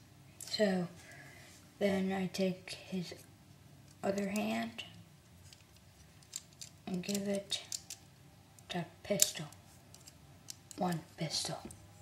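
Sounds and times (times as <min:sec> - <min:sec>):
low room noise: 0:00.0 - 0:12.0
small plastic clicks: 0:03.9 - 0:08.0.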